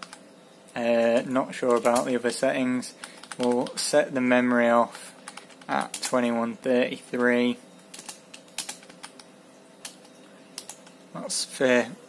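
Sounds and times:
faint steady hum: 0.0s - 12.0s
computer keyboard key clicks: 3.0s - 3.7s.

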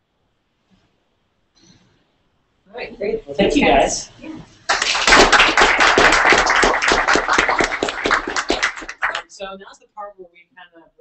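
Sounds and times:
audience applauding: 4.7s - 9.3s.

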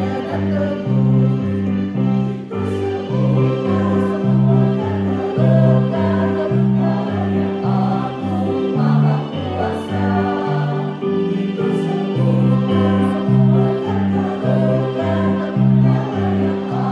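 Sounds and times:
choir singing a hymn: 0.0s - 16.9s
instrumental accompaniment: 0.0s - 16.9s.

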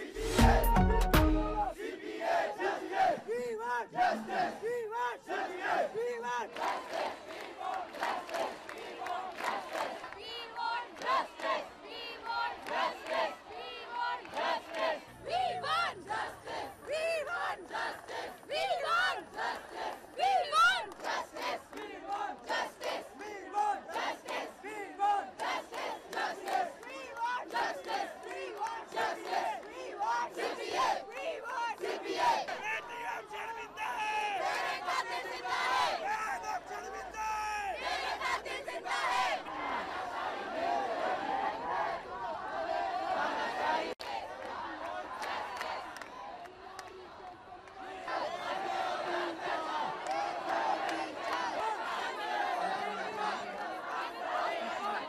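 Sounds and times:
crowd shouting slogans: 0.0s - 55.0s
hands clapping: 25.4s - 29.8s, 44.0s - 47.8s.

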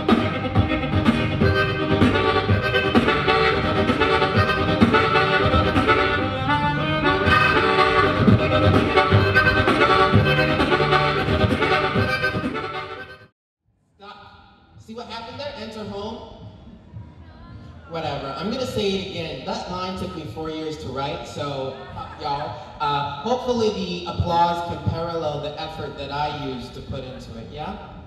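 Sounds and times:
harmonica: 0.0s - 13.3s
rhythmic beat: 0.0s - 13.3s.

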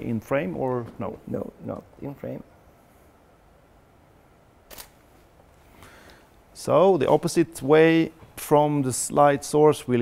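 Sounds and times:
camera shutter click: 4.7s - 5.0s.

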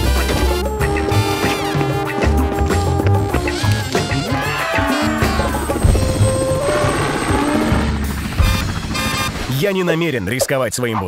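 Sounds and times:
background music: 0.0s - 10.3s
helicopter rotor chopping: 1.4s - 10.3s.

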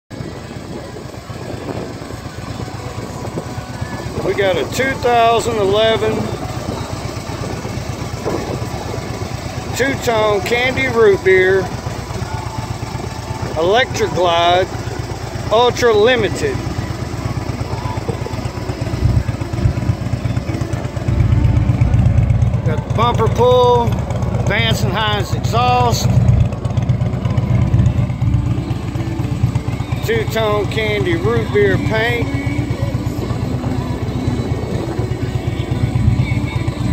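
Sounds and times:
motorcycle engine idling: 0.1s - 36.9s.

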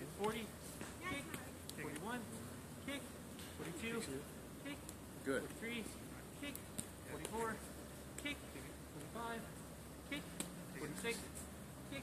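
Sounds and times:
distant children calling out: 4.5s - 5.1s, 5.8s - 12.0s.

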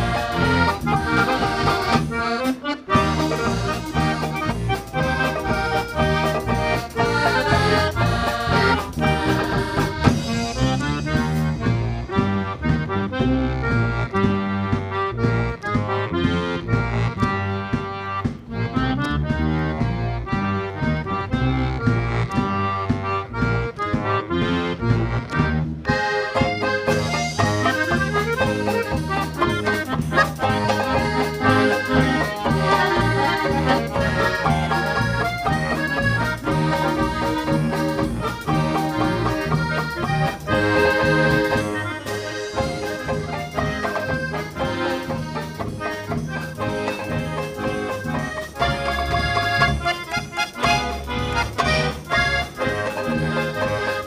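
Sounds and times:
polka band with accordion: 0.0s - 54.0s.

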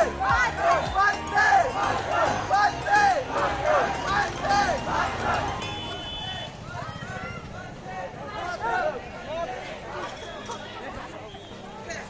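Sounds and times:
children shouting: 0.0s - 9.0s.

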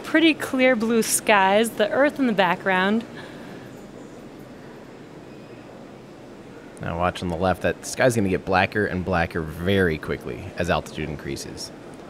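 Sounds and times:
faint rumble and hiss: 0.0s - 12.0s.

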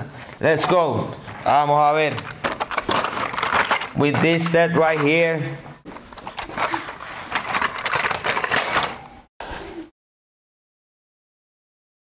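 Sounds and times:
toy cars clicking and rattling: 2.2s - 4.0s, 6.2s - 9.0s.

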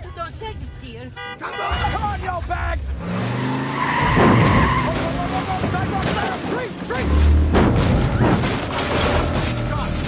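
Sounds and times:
car engine revving: 2.9s - 10.0s
tyres squealing in a skid: 3.1s - 10.0s.

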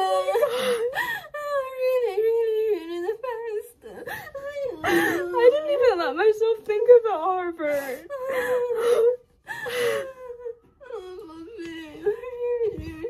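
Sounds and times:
girl sobbing and whimpering: 0.0s - 6.0s, 7.5s - 13.0s.

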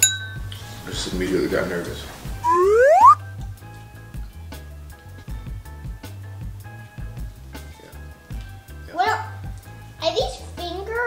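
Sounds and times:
background music with steady beat: 0.0s - 11.0s
rising whistle sound effect: 2.4s - 3.2s.

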